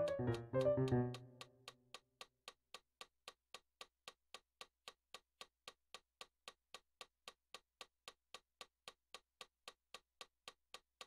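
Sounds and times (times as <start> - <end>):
metronome clicks: 0.0 - 1.8.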